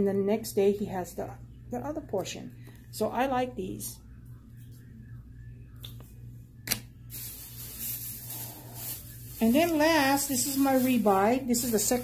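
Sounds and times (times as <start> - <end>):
low steady hum: 0.0 - 12.0
rustling and handling noise: 5.9 - 12.0.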